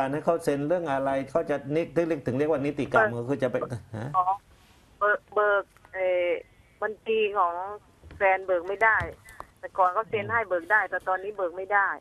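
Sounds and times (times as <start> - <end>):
woman talking over telephone: 5.0 - 12.0.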